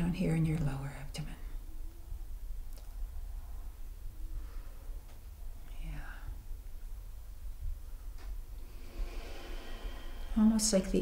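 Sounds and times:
low steady rumble: 0.0 - 11.0
soft whispered voice: 5.5 - 6.5.

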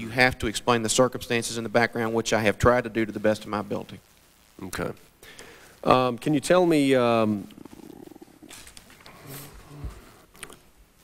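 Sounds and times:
faint breathing: 5.2 - 5.9.

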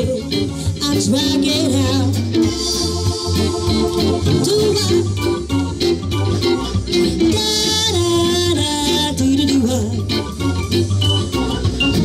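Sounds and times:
bass: 0.0 - 12.0
organ-like keyboard: 1.6 - 12.0
drums steady beat: 2.4 - 8.8, 9.8 - 12.0.

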